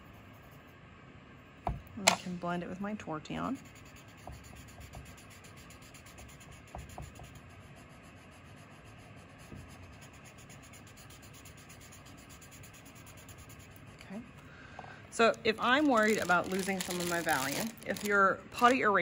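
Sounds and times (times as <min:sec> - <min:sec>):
scratchy rubbing on paper: 0:00.0 - 0:00.7, 0:03.5 - 0:14.2, 0:15.5 - 0:18.7.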